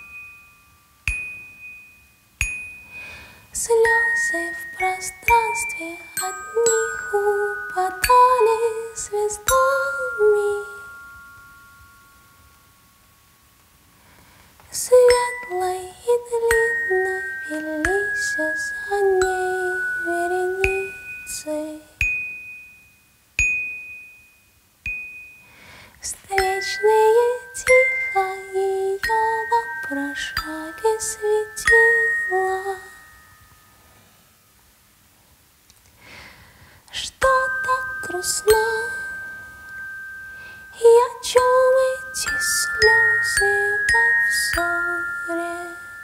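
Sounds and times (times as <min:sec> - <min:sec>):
glockenspiel notes ringing: 0:00.0 - 0:34.6, 0:37.0 - 0:46.0.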